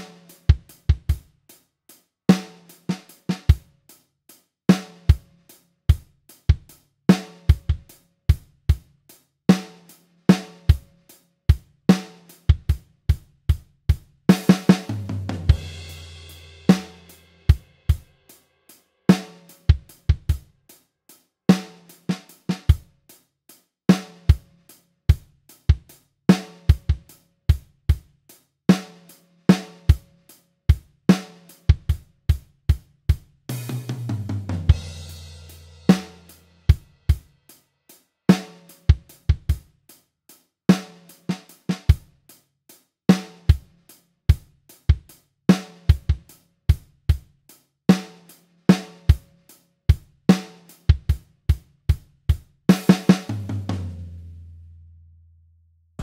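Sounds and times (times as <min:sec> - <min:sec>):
drum kit blues groove: 0:00.0 - 0:54.3
tom fill: 0:14.3 - 0:18.3.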